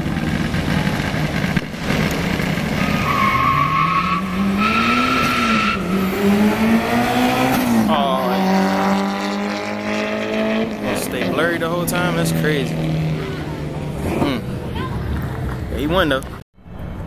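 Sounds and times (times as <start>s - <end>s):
car engine accelerating hard: 0.0s - 14.6s.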